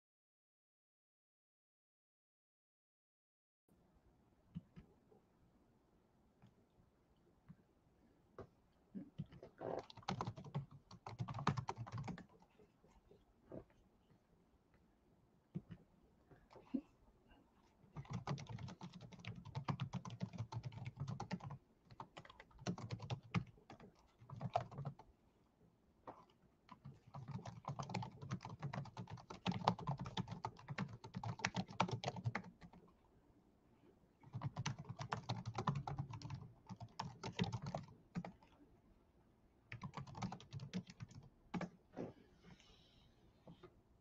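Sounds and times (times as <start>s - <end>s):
typing on computer keyboard: 9.2s - 12.4s, 18.0s - 25.1s, 26.7s - 32.8s, 34.2s - 38.6s, 39.7s - 41.8s.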